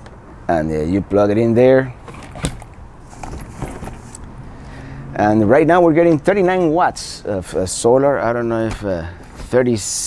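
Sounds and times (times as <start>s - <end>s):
outdoor background noise: 0.0s - 10.0s
light rustling: 2.0s - 4.4s.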